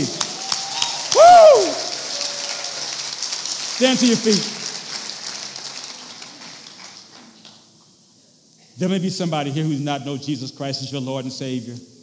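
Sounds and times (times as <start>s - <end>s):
congregation applauding: 0.0s - 7.8s
whooping cheer: 0.1s - 3.1s.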